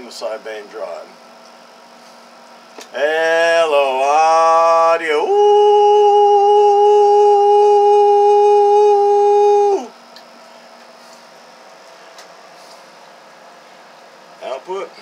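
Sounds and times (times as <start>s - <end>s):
man holding a long note: 3.0s - 9.9s.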